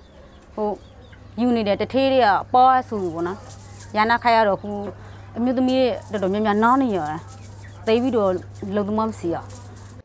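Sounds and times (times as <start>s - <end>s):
steady low hum: 0.0s - 10.0s
woman speaking: 0.6s - 9.6s.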